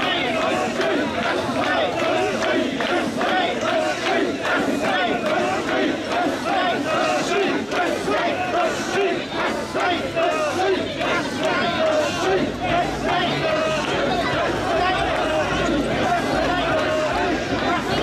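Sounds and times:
crowd chanting in rhythm: 0:00.0 - 0:18.0
crowd noise: 0:00.0 - 0:18.0.

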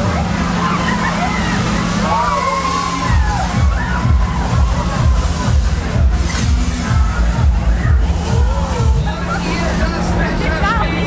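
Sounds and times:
ride machinery humming: 0:00.0 - 0:11.0
riders shrieking: 0:00.6 - 0:05.6.

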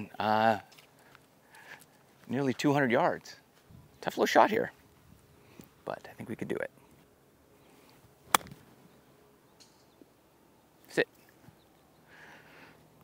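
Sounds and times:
golf club striking ball: 0:08.3 - 0:08.6.

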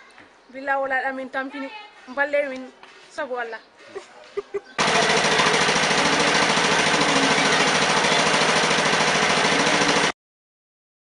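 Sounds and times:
motor pump engine running: 0:04.8 - 0:10.2.

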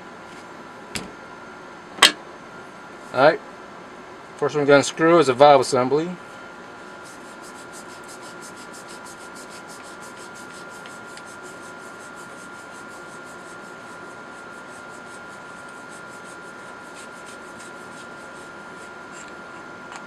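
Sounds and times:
faint high hum: 0:00.0 - 0:20.0.

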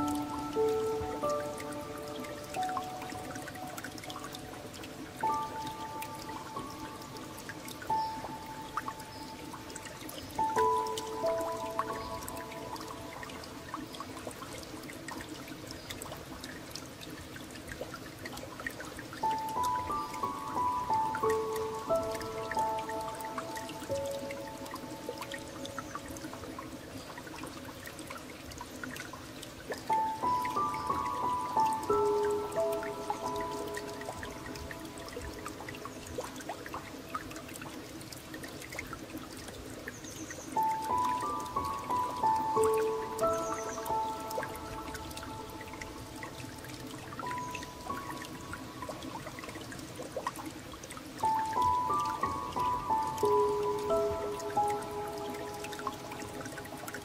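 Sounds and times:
gentle piano music: 0:00.0 - 0:57.0
trickling water: 0:00.0 - 0:57.0.

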